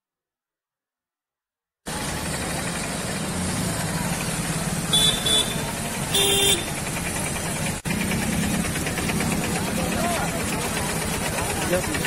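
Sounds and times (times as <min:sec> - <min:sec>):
traffic: 0:01.9 - 0:12.0
vehicle horn toots: 0:04.9 - 0:06.8
crowd chatter: 0:09.0 - 0:12.0.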